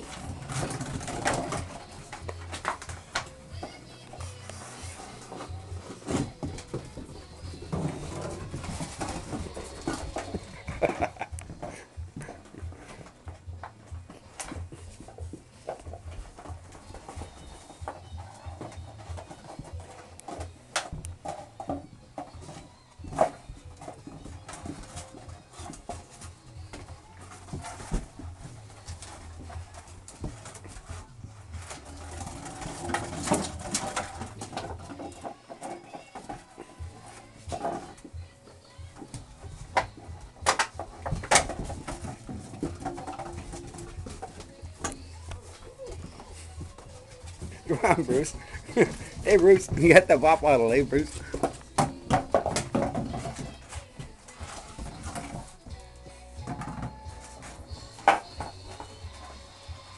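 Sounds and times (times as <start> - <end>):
puppies scuffling: 0.0 - 59.9.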